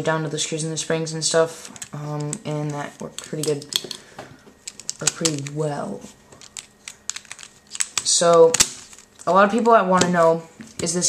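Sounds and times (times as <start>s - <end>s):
puzzle cube clicking: 4.6s - 5.6s, 6.4s - 9.7s.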